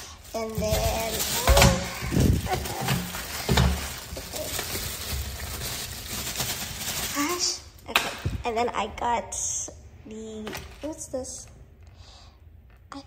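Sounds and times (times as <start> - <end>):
plastic bag rustling: 0.0 - 7.8, 10.4 - 11.4.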